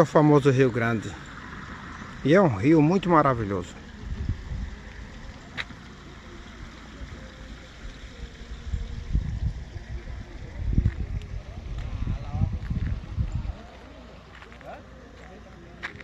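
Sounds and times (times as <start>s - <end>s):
wind buffeting microphone: 3.2s - 5.6s, 8.6s - 14.0s.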